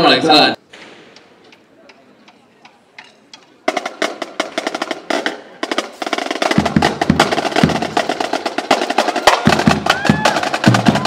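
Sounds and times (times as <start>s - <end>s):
snare drums with rolls: 3.6s - 11.0s.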